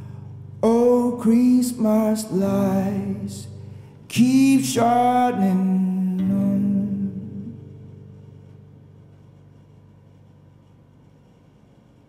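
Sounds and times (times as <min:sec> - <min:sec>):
acoustic guitar chord ringing: 0:00.0 - 0:10.1.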